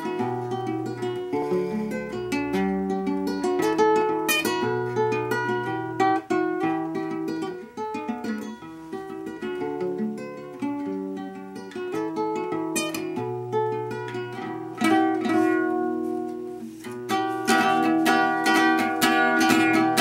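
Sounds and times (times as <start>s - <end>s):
fingerpicked classical guitar: 0.0s - 20.0s.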